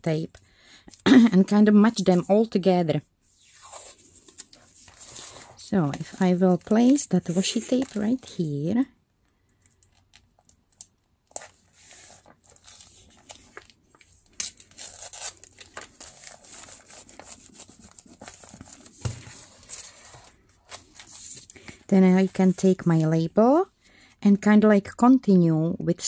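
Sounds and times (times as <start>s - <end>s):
tape and paper rustling: 3.4s - 8.4s, 9.6s - 22.6s.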